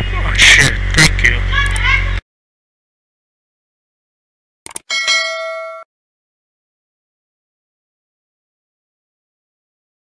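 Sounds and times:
notification bell ding: 4.9 - 5.9.

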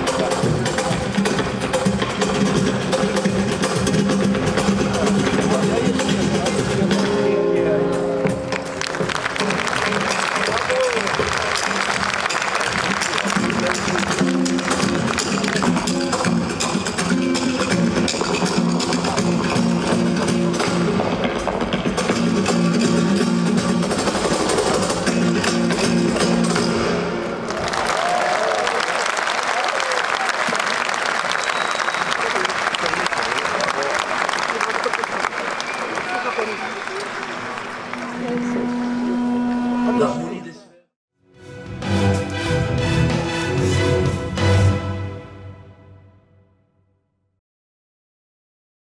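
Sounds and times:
audience applause: 8.5 - 16.2, 27.4 - 38.9.

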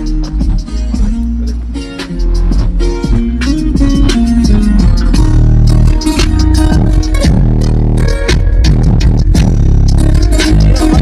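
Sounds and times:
music with heavy subwoofer bass: 0.0 - 11.0.

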